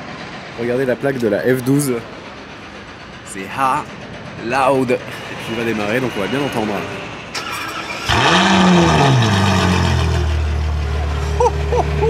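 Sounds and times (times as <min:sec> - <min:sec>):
car engine starting and idling: 0:07.3 - 0:12.0.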